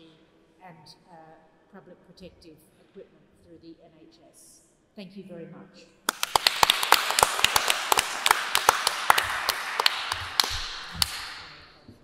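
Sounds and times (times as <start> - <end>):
audience applauding: 6.1 - 11.6
single sharp claps: 6.1 - 11.7.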